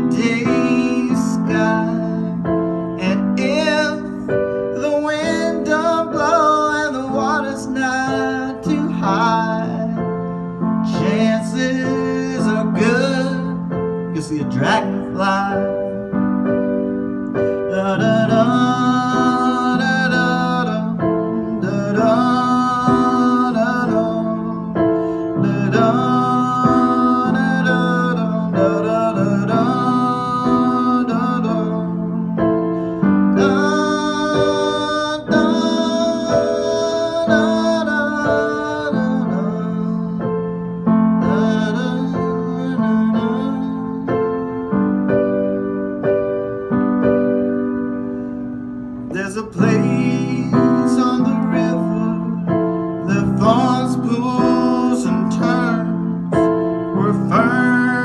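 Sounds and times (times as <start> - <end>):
electric piano chords and melody: 0.0 - 58.0.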